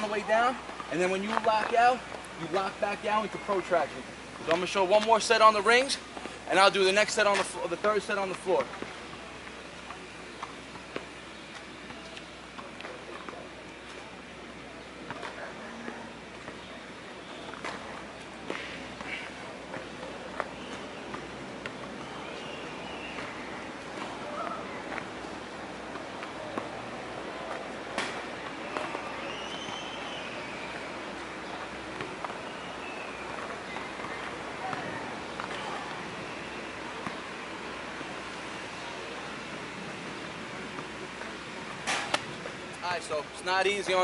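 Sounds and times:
outdoor background noise: 0.0 - 44.0.

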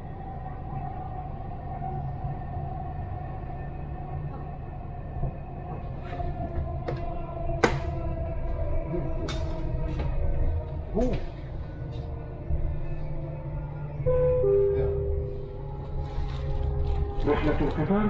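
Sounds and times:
train low rumble: 0.0 - 18.0
train whine: 0.0 - 18.0.

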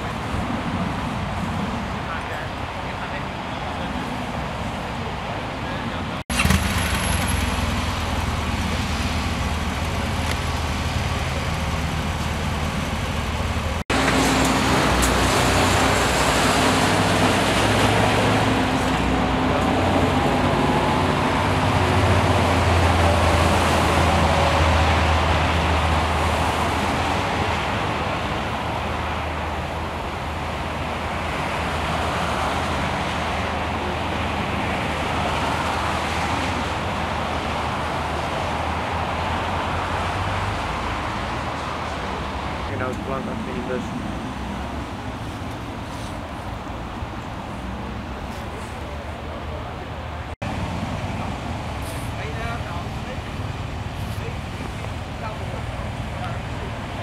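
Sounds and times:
cars passing at speed: 0.0 - 57.0.

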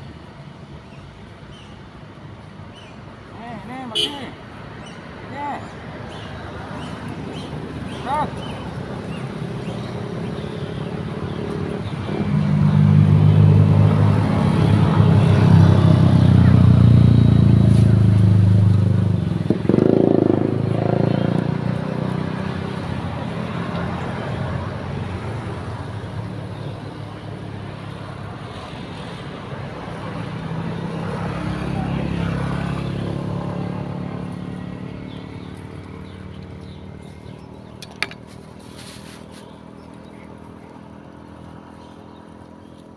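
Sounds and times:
vehicle engine running: 6.8 - 42.9.

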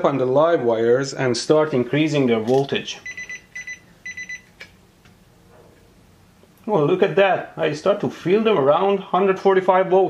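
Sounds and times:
clamp meter beeping: 3.0 - 4.5.

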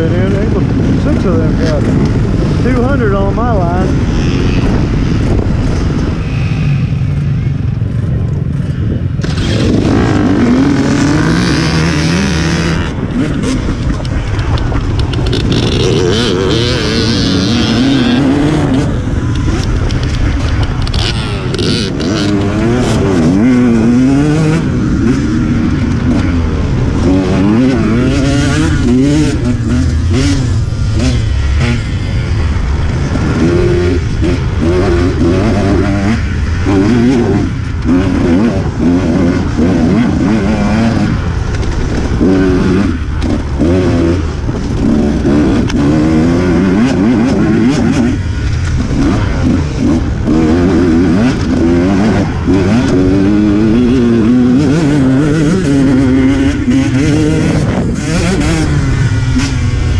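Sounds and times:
dirt bike engine revving: 0.0 - 59.9
wind noise on microphone: 0.0 - 59.9
knocks and rattles from trail: 13.3 - 16.3.

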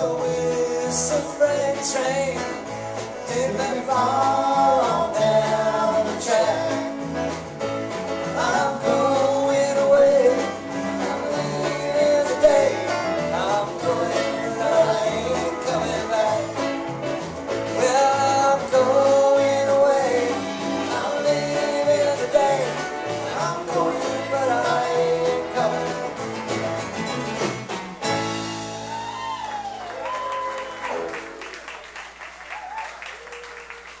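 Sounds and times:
live band playing country song: 0.0 - 34.0.

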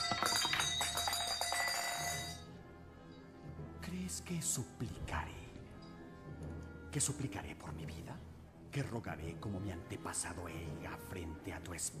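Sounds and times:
bell-like tones: 0.0 - 2.6.

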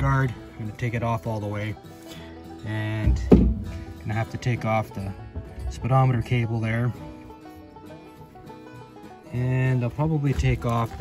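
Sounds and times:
plucked string country music: 0.0 - 11.0.

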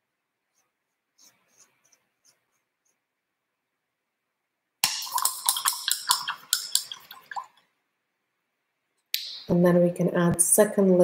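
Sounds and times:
paintbrush clinking in water cup: 4.8 - 7.6.

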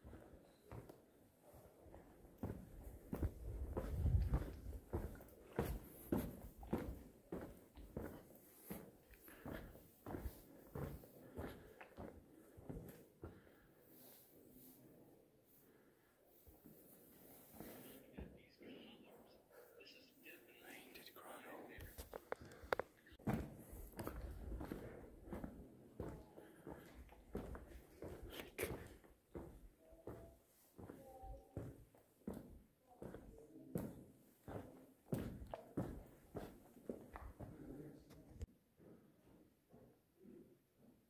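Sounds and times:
footsteps on cave trail: 0.0 - 14.2, 21.8 - 37.8
faint hushed voices: 0.0 - 40.8.

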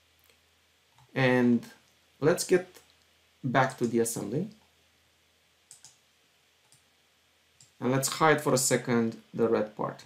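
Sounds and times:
computer mouse clicks: 5.7 - 6.0, 6.6 - 6.9.

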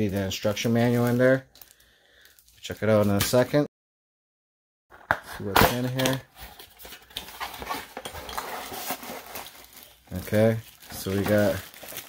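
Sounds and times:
plastic bags rustling: 0.0 - 3.0, 5.8 - 12.0.

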